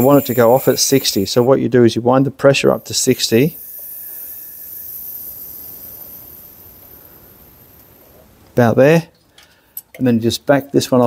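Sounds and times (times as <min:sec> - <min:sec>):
faint compressed air hiss: 0:00.0 - 0:01.6, 0:02.4 - 0:10.0.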